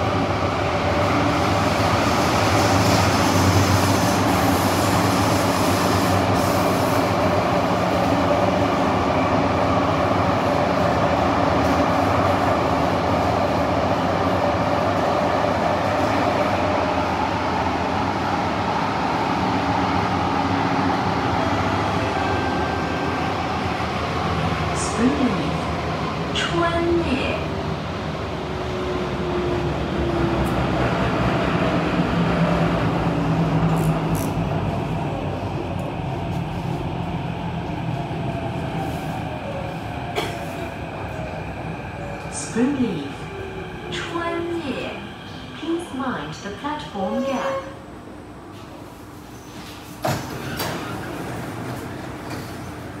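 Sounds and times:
train wheels rumbling on rail: 0.0 - 47.7, 48.5 - 53.0
sliding doors running open: 49.5 - 53.0
train door clunk: 49.7 - 52.6.

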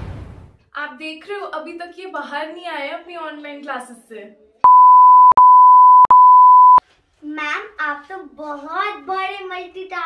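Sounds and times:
electronic beep tone: 4.7 - 6.8.

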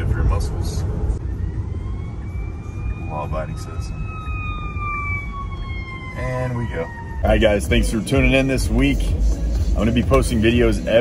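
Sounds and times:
siren wailing: 1.1 - 8.6.

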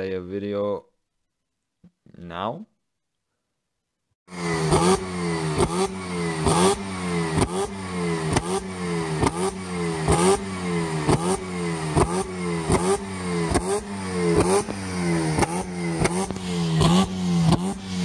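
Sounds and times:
car engine revving: 4.3 - 18.0
sharp exhaust pops: 4.6 - 18.0.

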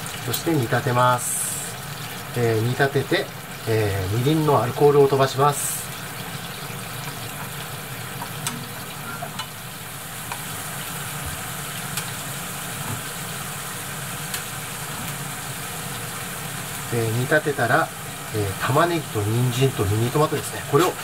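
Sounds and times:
liquid bubbling in frying pan: 0.0 - 17.0, 17.7 - 21.0.

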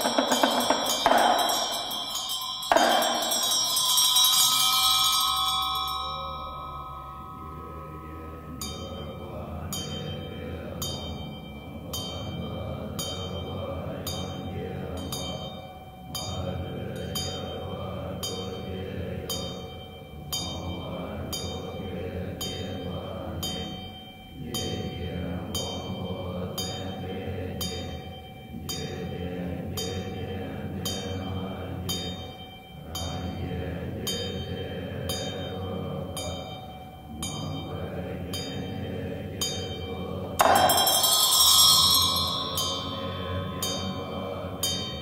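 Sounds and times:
steady struck drum beat: 0.0 - 3.8, 40.4 - 41.5
monks chanting in low voices: 0.0 - 45.0
ringing tone: 0.0 - 45.0.

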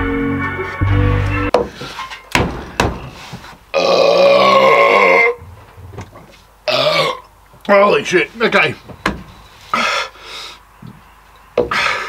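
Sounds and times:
music: 0.0 - 1.6
sharp knocks: 1.5 - 3.5
man belching loudly: 3.7 - 5.5, 6.6 - 7.3.

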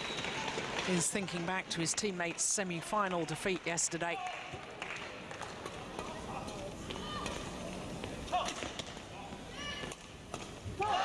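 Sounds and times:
players' footwork on court: 0.0 - 11.0.

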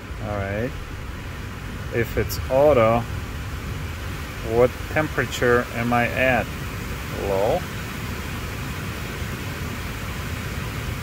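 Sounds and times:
low hum: 0.0 - 9.9
car climate system blowing air: 0.0 - 11.0.

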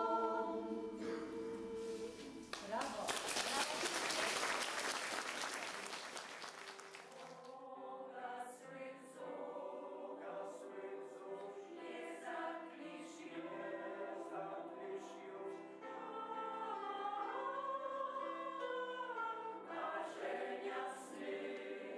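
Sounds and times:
mixed choir singing: 0.0 - 2.5, 7.0 - 21.9
audience applause: 2.5 - 7.4.

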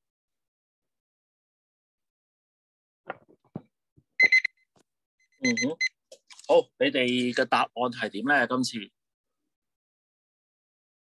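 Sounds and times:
timer alarm short high beeps: 5.2 - 6.0.

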